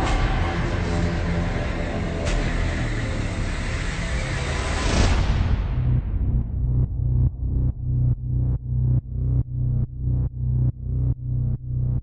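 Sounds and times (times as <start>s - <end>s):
dense low rumble: 0.0s - 12.0s.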